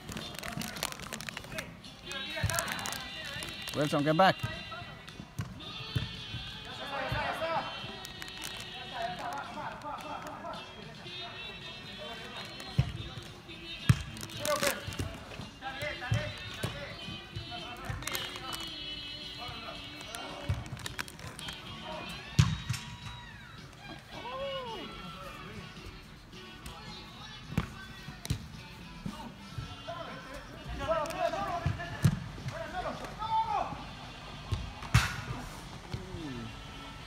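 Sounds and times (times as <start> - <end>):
music playing in a hall: 0.0 - 37.0
players' voices: 0.0 - 37.0
soccer ball kicks on turf: 2.3 - 8.0, 12.5 - 18.6, 19.4 - 23.3, 26.6 - 29.8, 30.6 - 32.8.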